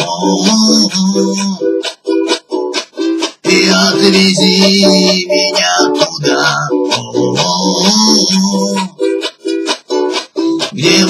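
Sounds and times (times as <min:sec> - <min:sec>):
ukulele chord stabs and strumming: 0:00.0 - 0:11.0.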